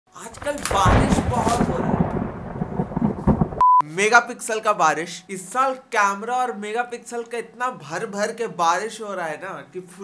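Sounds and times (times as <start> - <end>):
rain: 0.3 - 3.6
rumbling thunder: 0.3 - 3.6
short steady beep: 3.6 - 3.8.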